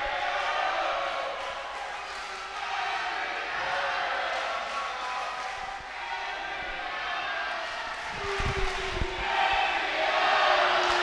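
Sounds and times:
crowd chanting and cheering: 0.0s - 11.0s.

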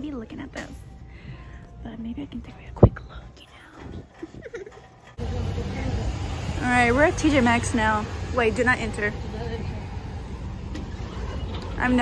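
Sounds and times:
low outdoor rumble: 5.2s - 12.0s.

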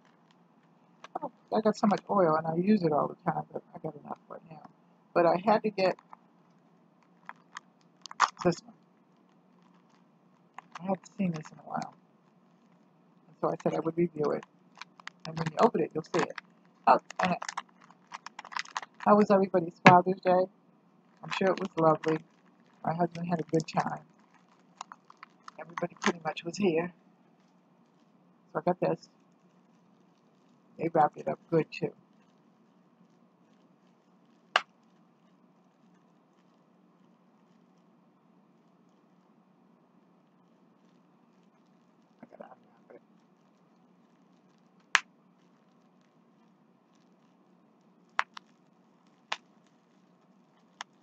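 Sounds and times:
package being opened: 7.3s - 8.4s, 17.0s - 19.0s.

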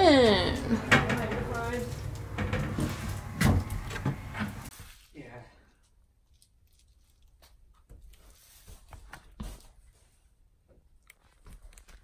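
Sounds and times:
door knocks and rattles: 0.8s - 4.3s.

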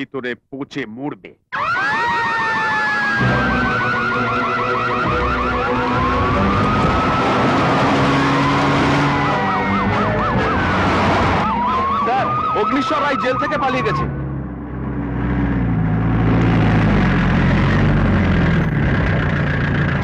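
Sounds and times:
fast warbling siren yelps: 1.5s - 14.2s
alarm siren wailing: 1.5s - 14.4s.

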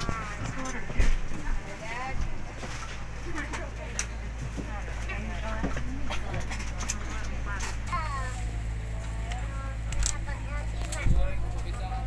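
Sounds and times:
passengers chattering: 0.0s - 12.0s.

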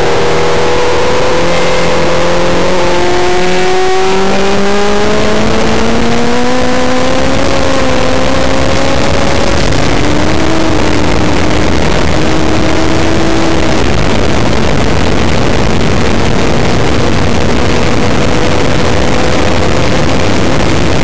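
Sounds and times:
heavy wind noise: 0.0s - 21.0s
race car engine accelerating: 0.0s - 21.0s.

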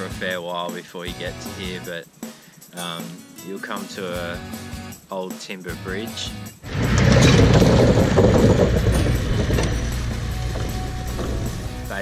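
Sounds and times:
background music: 0.0s - 12.0s
vehicle tyres over timber planks: 6.6s - 12.0s.

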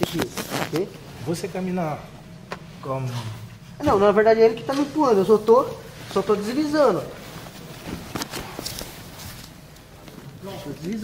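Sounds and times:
cloth rustling: 0.0s - 1.7s, 4.7s - 11.0s
bodies shifting on floor mat: 6.0s - 10.5s.

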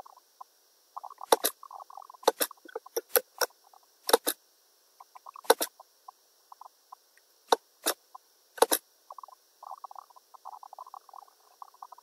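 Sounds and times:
computer mouse clicks: 1.2s - 1.6s, 2.2s - 3.5s, 4.1s - 4.4s, 5.4s - 5.7s, 8.6s - 8.8s.

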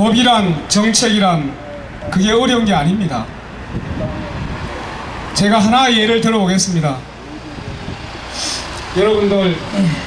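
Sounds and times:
car passing: 0.0s - 10.0s.

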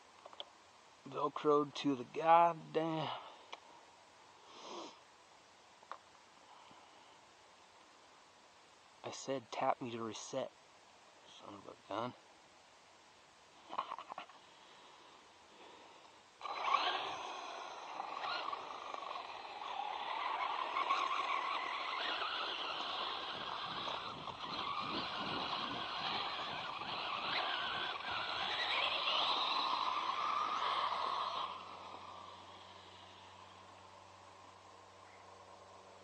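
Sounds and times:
tyres scraping dirt: 16.4s - 33.3s
toy truck motor whine: 16.4s - 33.7s.

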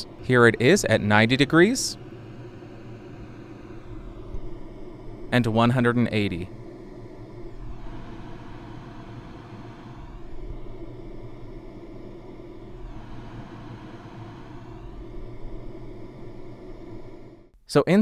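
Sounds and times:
white noise hiss: 0.0s - 18.0s.

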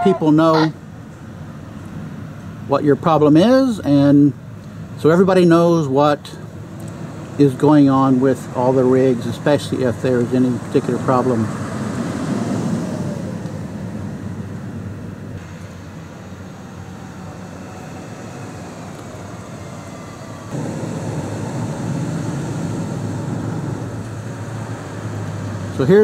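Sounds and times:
engine drone: 0.0s - 26.0s
vehicles driving slowly past: 0.0s - 26.0s.

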